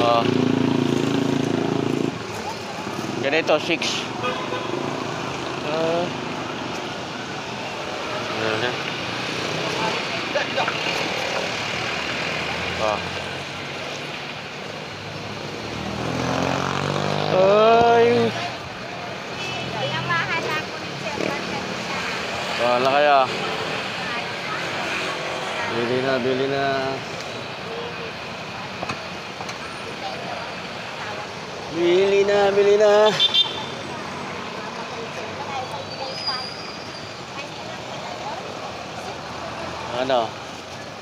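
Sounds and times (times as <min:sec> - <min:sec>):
busy street traffic: 0:00.0 - 0:41.0
vehicle engine passing: 0:14.9 - 0:18.6.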